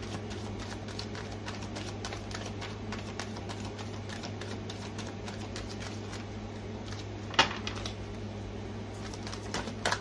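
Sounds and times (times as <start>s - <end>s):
cards being shuffled: 0.0s - 8.0s, 9.0s - 10.0s
steady low hum: 0.0s - 10.0s.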